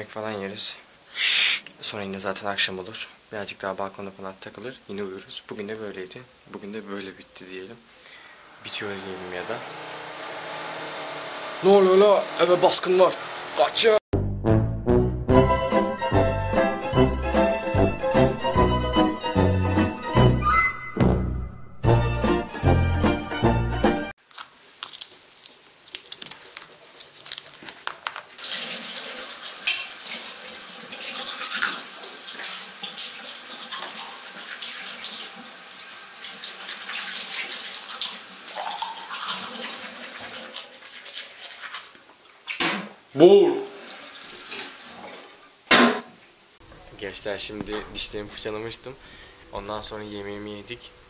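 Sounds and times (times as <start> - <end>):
toothbrush scrubbing teeth: 24.8 - 28.3
water running into sink: 28.4 - 42.0, 43.5 - 45.5.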